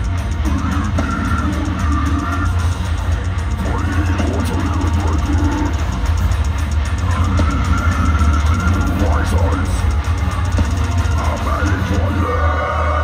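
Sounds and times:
metal band playing live: 0.0s - 13.0s.

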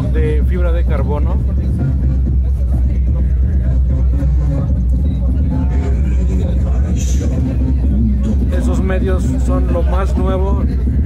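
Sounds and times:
car audio bass rumble: 0.0s - 11.0s
indistinct voices: 0.0s - 11.0s.

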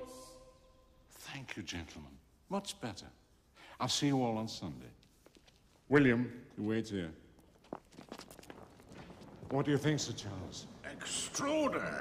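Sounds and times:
faint footsteps: 4.5s - 11.2s.

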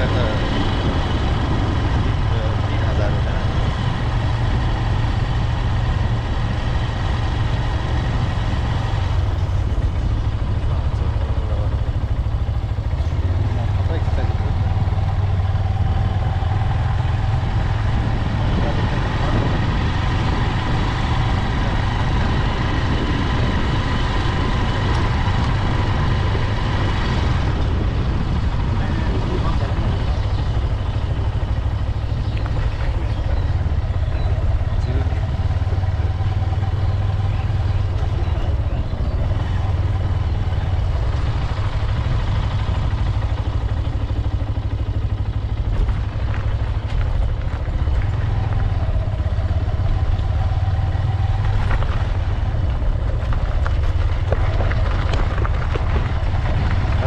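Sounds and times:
motorcycle engine running: 0.0s - 57.0s
road and wind rumble: 0.0s - 57.0s.

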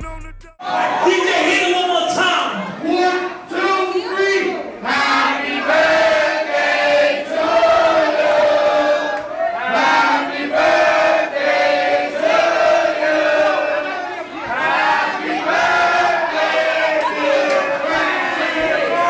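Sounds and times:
crowd singing in unison: 4.8s - 19.0s.

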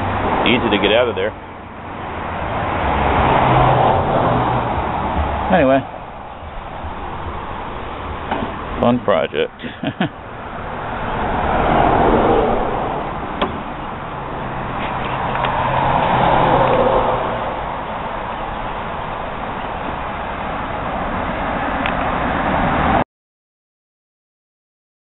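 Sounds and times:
road traffic rushing by: 0.0s - 23.0s.

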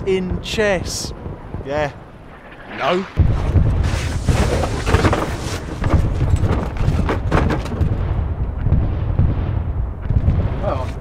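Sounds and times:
rumble of explosions: 0.0s - 11.0s.

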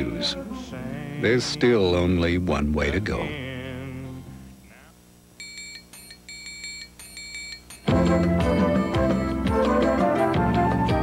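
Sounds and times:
high electronic beeps: 5.4s - 8.0s
loud music: 7.9s - 11.0s.

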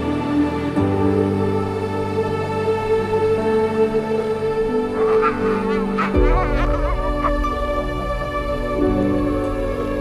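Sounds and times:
calm new-age music: 0.0s - 10.0s.

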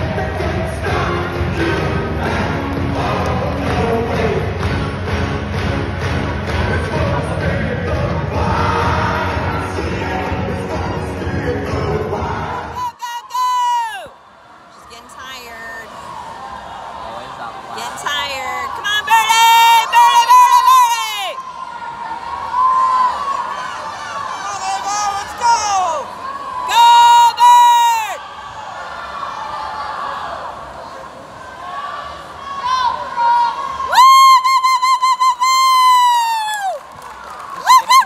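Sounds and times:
crowd hubbub: 0.0s - 34.0s
loud high-pitched shouts: 12.6s - 14.2s, 17.8s - 30.8s.

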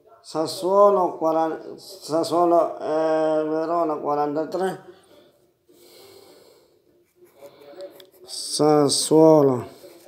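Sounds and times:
man breathing through nose: 5.7s - 6.8s.

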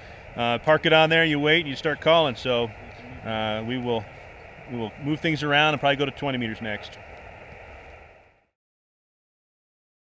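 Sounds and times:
faint outdoor hiss: 0.0s - 8.6s.

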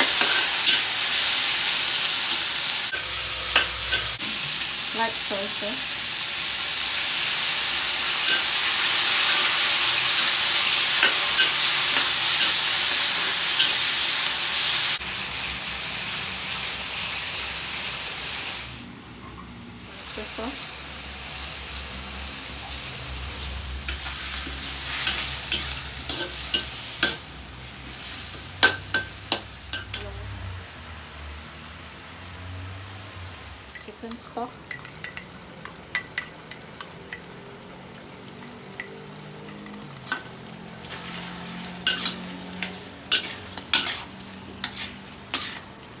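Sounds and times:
metal spatula scraping a wok: 0.0s - 1.0s, 23.8s - 27.3s, 40.8s - 45.9s
food sizzling in a wok: 0.0s - 19.0s, 19.8s - 46.0s.

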